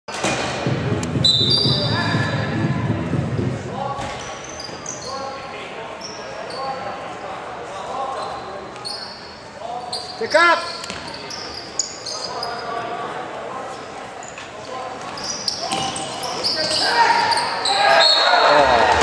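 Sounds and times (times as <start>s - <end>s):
shoes squeaking on floor: 1.1s - 2.5s, 4.0s - 5.4s, 6.0s - 6.9s, 8.2s - 12.8s, 14.2s - 19.0s.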